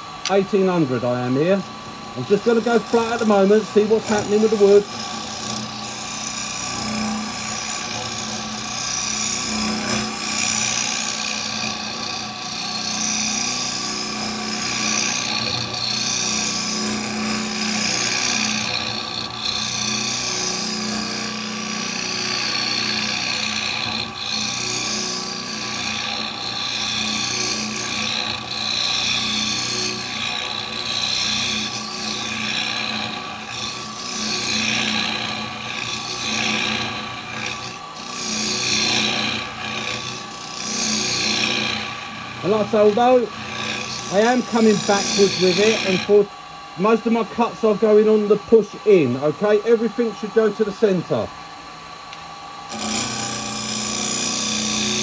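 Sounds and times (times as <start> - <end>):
cutter scraping spinning wood: 0.0 - 55.0
lathe motor hum: 0.0 - 55.0.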